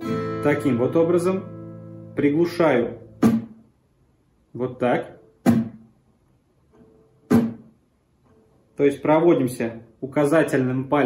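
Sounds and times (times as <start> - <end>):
muted acoustic guitar strum: 0.0 - 3.7, 6.8 - 7.7.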